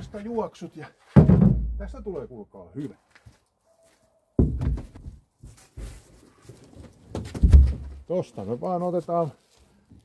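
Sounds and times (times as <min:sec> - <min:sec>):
rowboat hull knocking and thumping: 0:01.1 - 0:01.9.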